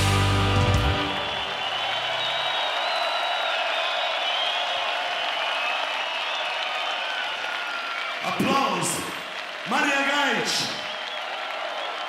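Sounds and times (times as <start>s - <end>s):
crowd applauding and cheering: 0.0s - 12.0s
high whistles: 0.7s - 7.3s.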